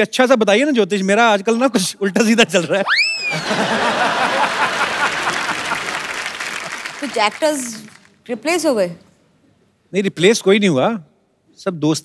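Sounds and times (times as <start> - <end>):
audience applauding: 3.3 - 8.2.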